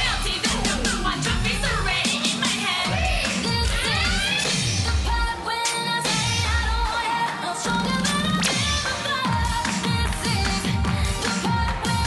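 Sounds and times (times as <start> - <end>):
pop dance track with singing: 0.0 - 12.0.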